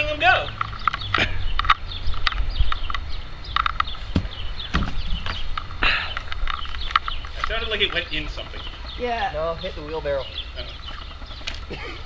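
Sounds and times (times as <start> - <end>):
sharp knocks: 3.6 - 5.4.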